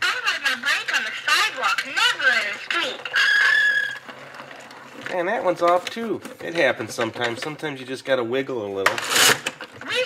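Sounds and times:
toy recorded voice: 0.0 - 3.2
high squealing tone: 2.9 - 4.2.

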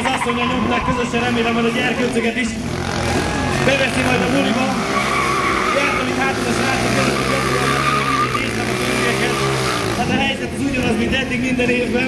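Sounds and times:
quad engine at high revs: 1.2 - 12.0.

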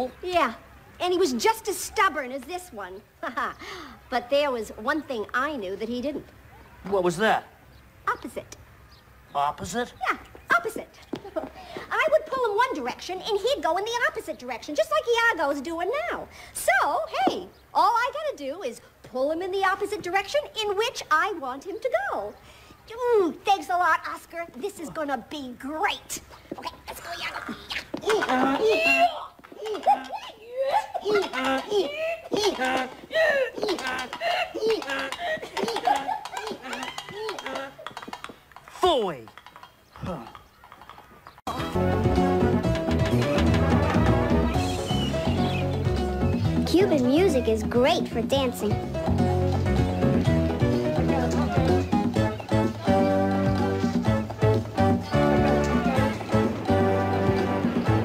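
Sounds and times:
person making wordless cries: 26.5 - 37.8.

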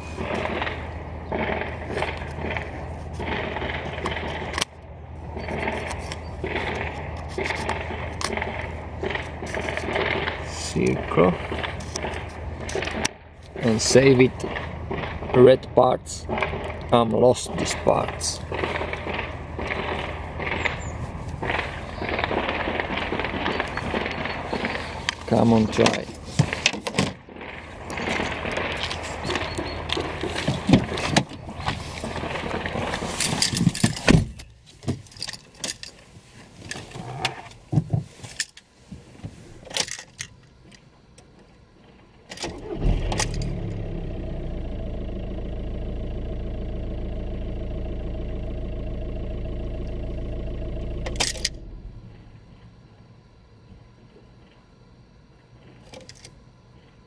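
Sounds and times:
diesel engine starting and idling: 0.0 - 26.0, 27.3 - 33.5, 42.4 - 52.8
rustling and clicking of handling: 0.0 - 42.6.

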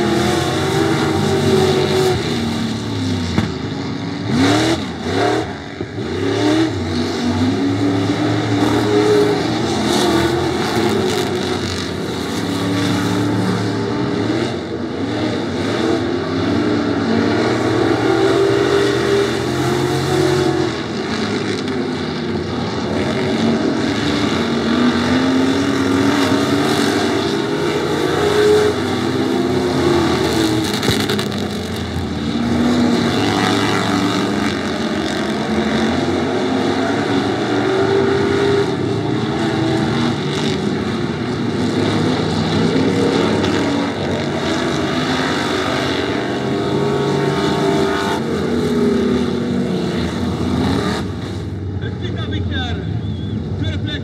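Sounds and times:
racing car engines: 0.0 - 54.0.

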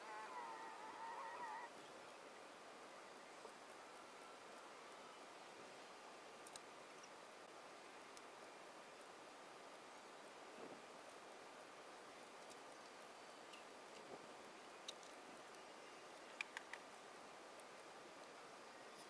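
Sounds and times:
faint room hiss: 0.0 - 19.0.

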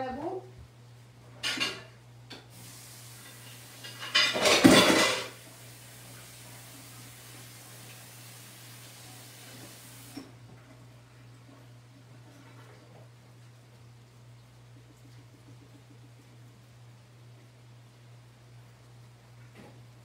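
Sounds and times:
loud clatter in sink: 1.4 - 1.9, 3.2 - 5.4
tap water running into sink: 2.3 - 10.3.

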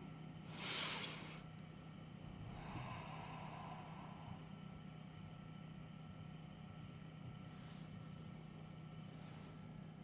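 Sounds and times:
low electrical hum: 0.0 - 10.0
background hiss: 0.4 - 1.6.

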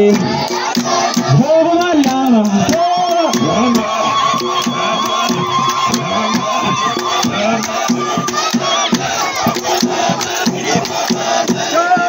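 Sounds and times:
sharp hand claps: 0.0 - 11.7
group chanting in rhythm: 0.0 - 12.0.

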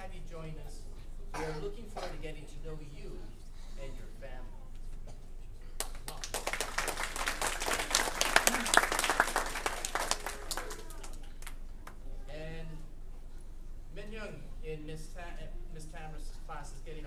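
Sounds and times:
children applauding: 5.8 - 12.0.

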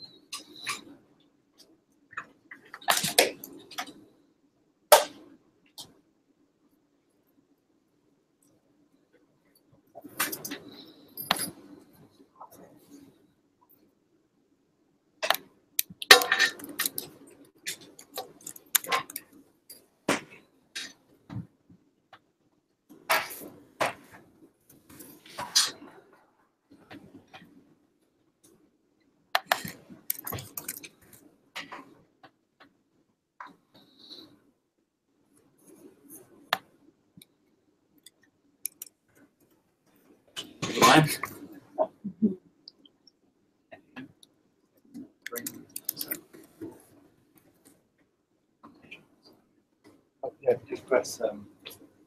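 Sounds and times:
faint room murmur: 0.0 - 52.0.

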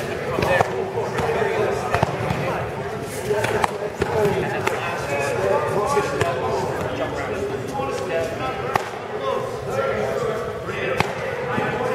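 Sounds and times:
indistinct chatter in a hall: 0.0 - 11.9.

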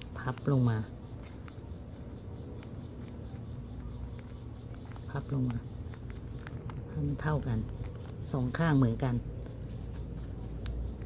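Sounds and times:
crisp paper ticks: 0.0 - 11.0
paper rustling and scratching: 0.0 - 11.0.

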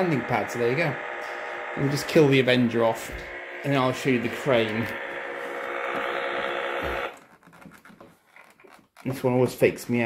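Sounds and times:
buzzy electronic engine noise: 0.0 - 7.2.

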